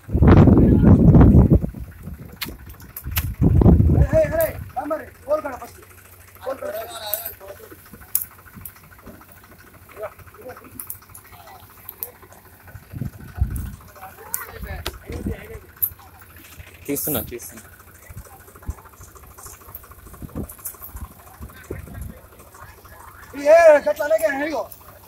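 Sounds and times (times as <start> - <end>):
steady low hum: 0.0 - 25.0
weed stem snapping: 2.4 - 3.3
dry grass rustling and crackling: 7.1 - 16.9, 17.6 - 25.0.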